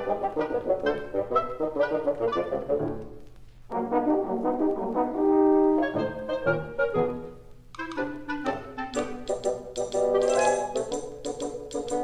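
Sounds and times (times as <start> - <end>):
orchestral woodwinds and brass: 0.0 - 3.1, 3.7 - 10.9.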